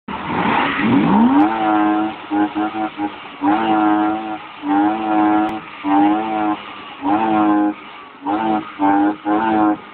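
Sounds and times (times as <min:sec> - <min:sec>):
car engine revving: 0:00.1 - 0:09.9.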